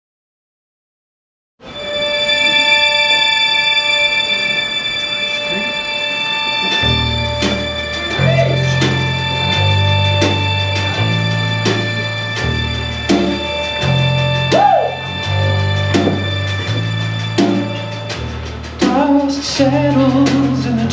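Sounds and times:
sustained band chord: 1.8s - 20.3s
bass notes: 6.7s - 20.9s
sharp drum hits: 7.4s - 19.2s.

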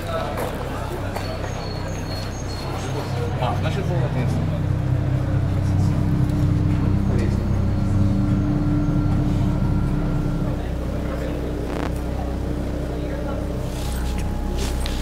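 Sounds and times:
low soundtrack drone: 2.6s - 15.0s
held higher tone: 4.8s - 15.0s.

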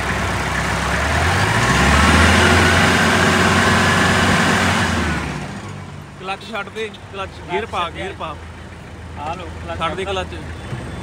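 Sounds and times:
engine revving: 0.0s - 5.9s.

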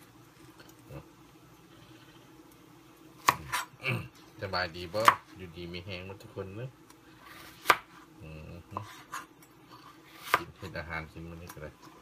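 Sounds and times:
knife chopping on plastic board: 5.0s - 5.3s, 7.2s - 8.0s, 10.2s - 10.6s.

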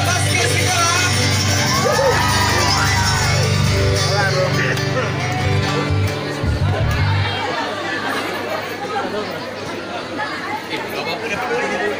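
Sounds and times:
music with strong bass: 0.0s - 7.3s
crowd chattering: 0.0s - 11.9s.

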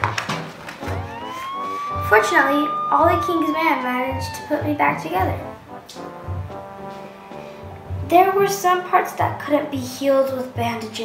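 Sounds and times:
background music with steady beat: 0.4s - 11.0s
siren wail rising in pitch: 0.8s - 5.6s.

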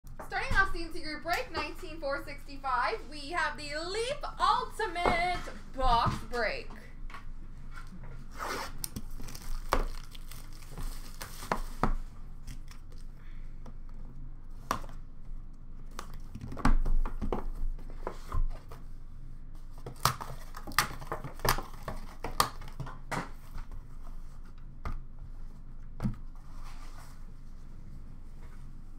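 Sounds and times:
plastic shrink-wrap tearing and crinkling: 8.5s - 11.8s.

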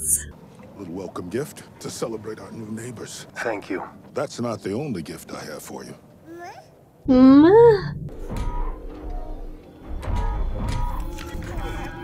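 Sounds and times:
film score: 7.0s - 12.0s.

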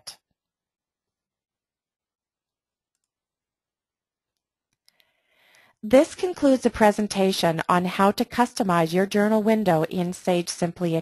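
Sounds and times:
faint mouse clicks: 4.3s - 5.7s.

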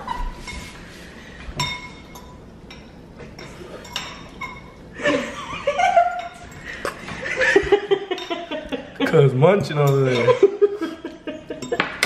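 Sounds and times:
metal forks clinking on glass bowls: 1.6s - 4.8s, 6.0s - 7.0s, 8.1s - 8.6s, 9.8s - 10.5s, 11.5s - 12.0s
people laughing: 5.0s - 6.3s, 7.0s - 9.3s, 10.0s - 12.0s.

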